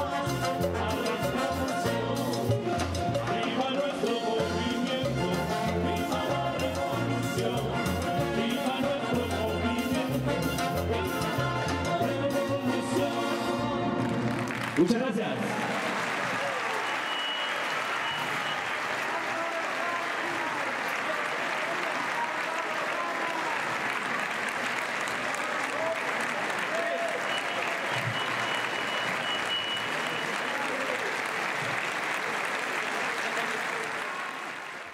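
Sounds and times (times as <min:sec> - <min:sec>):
audience applauding: 0:13.9 - 0:34.9.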